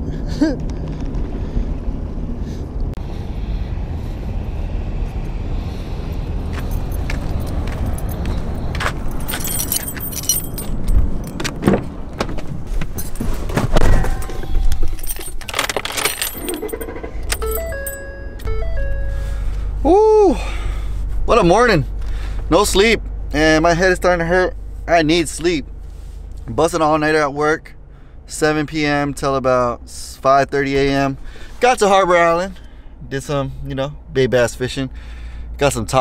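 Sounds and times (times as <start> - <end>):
keys jangling: 6.7 - 11.6, 12.8 - 13.4, 14.2 - 18.5
vehicle door opening and shutting: 8.8 - 19.6
low steady hum: 12.7 - 26.9
electronic chime tones: 17.0 - 19.6.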